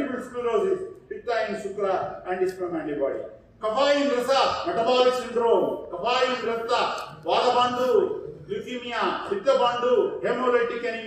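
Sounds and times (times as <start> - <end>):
man lecturing: 0.0 - 11.0.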